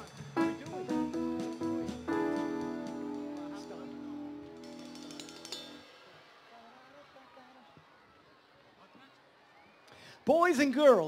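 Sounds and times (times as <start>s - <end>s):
live band holding chord: 0.4s - 5.9s.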